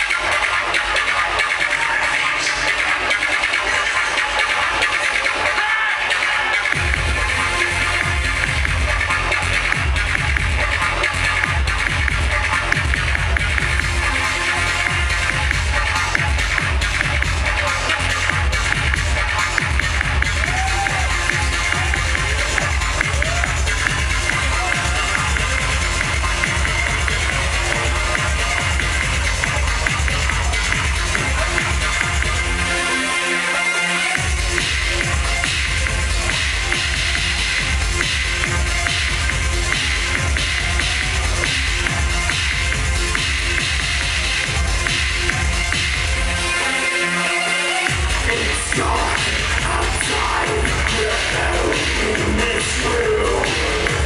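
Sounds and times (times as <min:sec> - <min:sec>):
heavy bass beat: 0:00.0 - 0:33.1, 0:34.1 - 0:46.9, 0:47.8 - 0:54.0
loud electronic music: 0:00.0 - 0:54.0.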